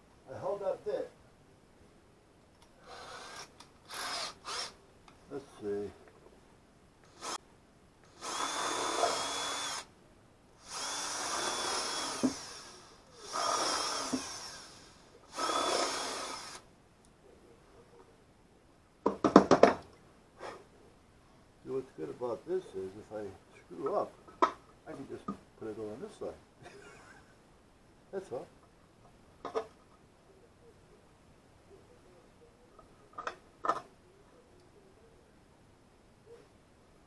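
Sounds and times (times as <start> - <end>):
cordless drill boring into wood: 2.8 - 4.8, 7.1 - 7.4, 8.1 - 9.9, 10.6 - 16.6.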